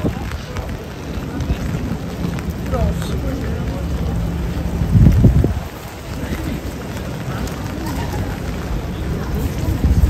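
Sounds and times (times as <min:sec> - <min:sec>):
passers-by talking: 0:00.0 - 0:10.0
steady rain: 0:00.0 - 0:10.0
low rumble: 0:01.4 - 0:07.1.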